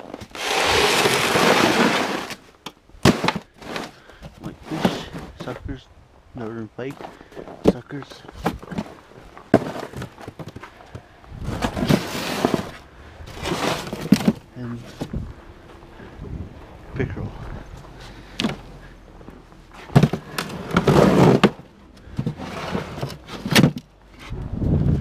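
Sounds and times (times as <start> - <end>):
plastic tubs knocking and thudding: 0.0 - 5.6, 6.9 - 15.2, 18.3 - 18.7, 19.8 - 24.0
scraping and rustling: 0.0 - 5.7, 6.8 - 16.2, 17.4 - 24.4.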